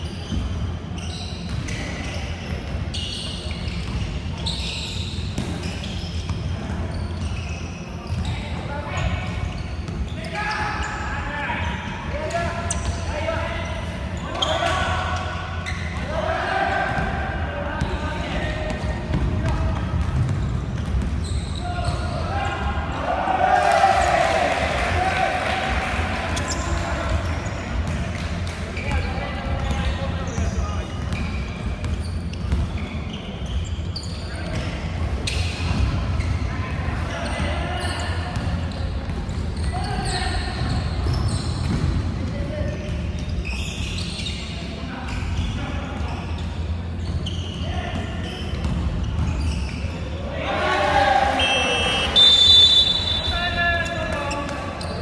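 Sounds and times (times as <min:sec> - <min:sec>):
players calling out: 0:50.2 - 0:55.0.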